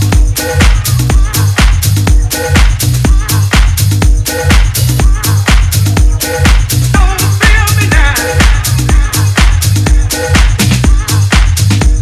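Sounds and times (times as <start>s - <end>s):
bassline: 0.0s - 12.0s
four-on-the-floor kick drum: 0.0s - 12.0s
hi-hats: 0.0s - 12.0s.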